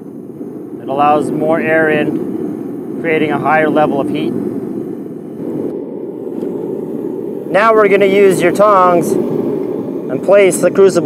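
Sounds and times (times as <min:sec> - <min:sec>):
gas burner flame rushing: 0:00.0 - 0:11.0.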